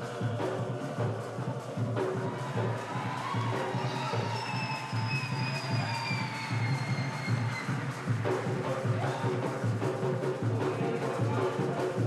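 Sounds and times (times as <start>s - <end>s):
drums beating: 0.0s - 12.0s.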